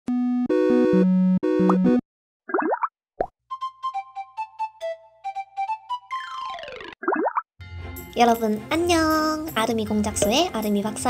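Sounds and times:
light children's music: 3.5s - 6.7s, 7.6s - 11.0s.

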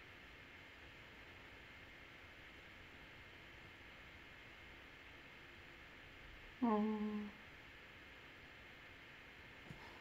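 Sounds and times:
person humming closed-mouth: 6.6s - 7.4s.

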